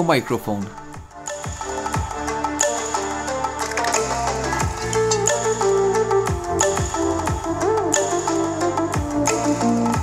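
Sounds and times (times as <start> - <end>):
electronic dance music: 1.0 - 10.0.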